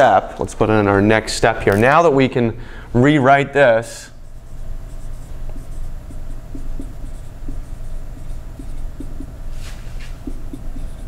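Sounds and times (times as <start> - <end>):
steady low hum: 0.0 - 11.0
marker writing on whiteboard: 4.2 - 11.0.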